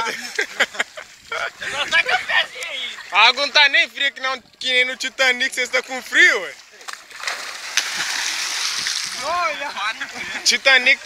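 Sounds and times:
water churning and sloshing: 0.0 - 11.0
big splash into water: 6.9 - 9.4.

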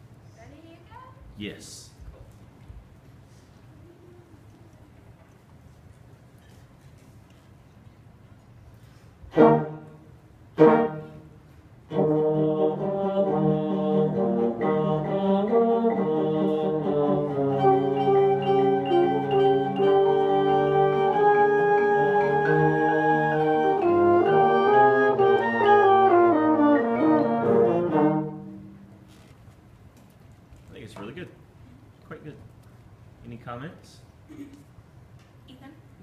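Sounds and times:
orchestra playing held chords: 9.3 - 11.3, 11.9 - 29.0.

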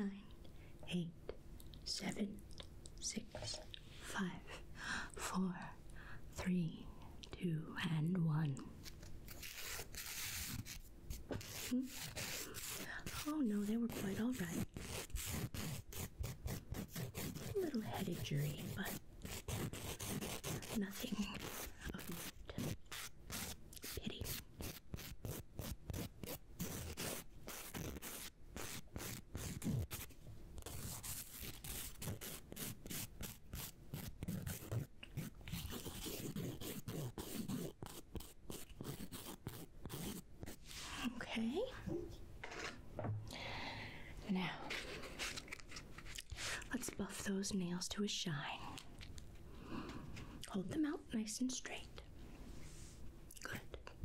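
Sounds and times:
nail file scraping fingernails: 8.8 - 10.8, 11.4 - 40.6.

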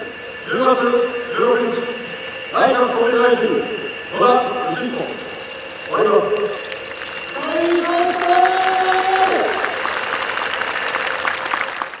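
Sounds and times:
audience applauding: 5.2 - 12.0.

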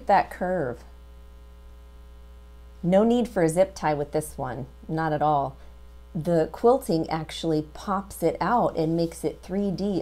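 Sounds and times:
woman speaking: 0.0 - 0.9, 2.8 - 10.0
electrical mains hum: 0.0 - 10.0.

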